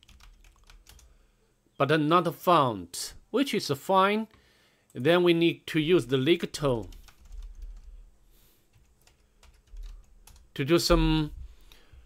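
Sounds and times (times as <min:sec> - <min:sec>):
computer keyboard typing: 0:00.0 - 0:01.1, 0:06.0 - 0:08.0, 0:08.7 - 0:10.5.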